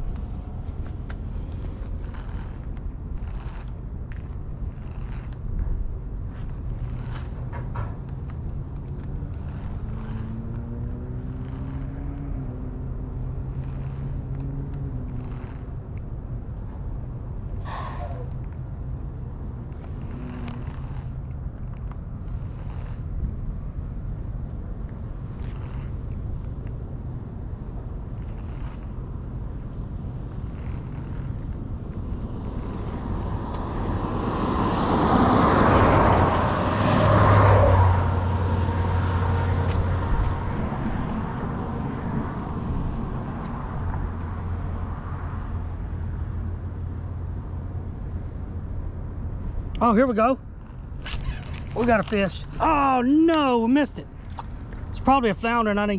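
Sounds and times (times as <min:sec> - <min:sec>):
road vehicle passing: 0:00.0 - 0:55.9.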